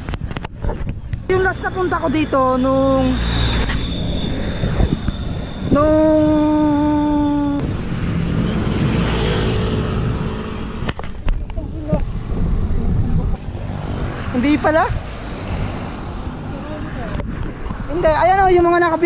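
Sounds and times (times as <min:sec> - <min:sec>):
bicycle road noise: 0:00.0 - 0:19.0
wind on microphone: 0:00.0 - 0:19.0
steady pitched tone: 0:01.2 - 0:10.9.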